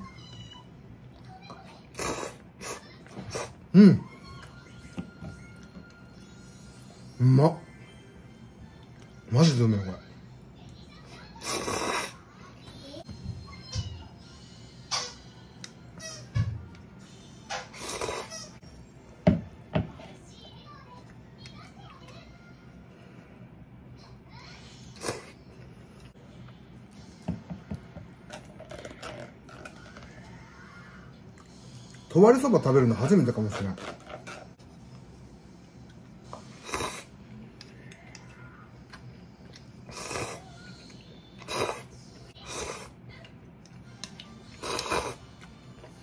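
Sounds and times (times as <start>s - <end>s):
person slurping noodles: 1.9s - 3.6s, 11.4s - 12.2s, 17.8s - 18.3s, 36.6s - 37.1s, 39.9s - 40.4s, 41.4s - 42.9s, 44.6s - 45.2s
faint child's voice: 10.1s - 14.6s.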